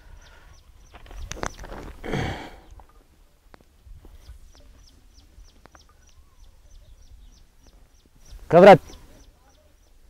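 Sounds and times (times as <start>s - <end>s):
bird chirping: 0.0s - 2.0s, 4.1s - 10.0s.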